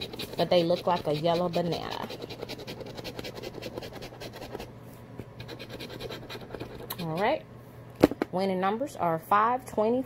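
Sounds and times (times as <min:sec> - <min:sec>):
coin scratching lottery ticket: 0:00.0 - 0:04.7, 0:05.4 - 0:07.2.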